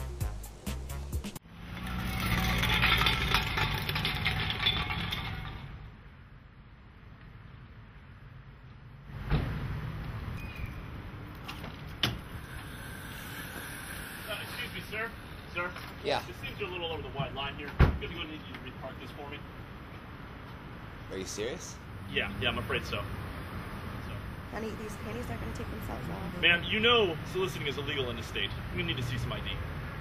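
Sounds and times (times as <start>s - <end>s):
music: 0.0s - 1.4s.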